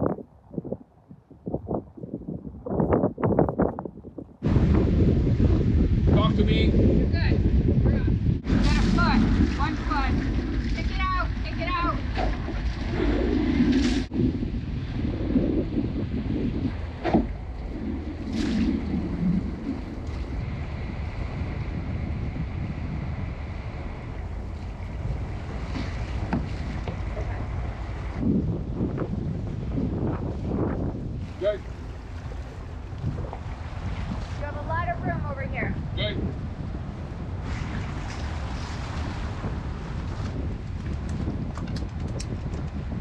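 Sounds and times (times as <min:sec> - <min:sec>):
wind on microphone: 0:00.0 - 0:43.0
boat engine rumble: 0:03.9 - 0:43.0
water moving along hulls: 0:04.0 - 0:43.0.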